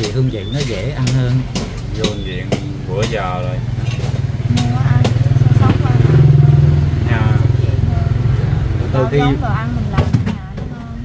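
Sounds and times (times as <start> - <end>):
person speaking: 0.0 - 3.7, 8.9 - 9.9
engine low pulsing drone: 0.0 - 11.0.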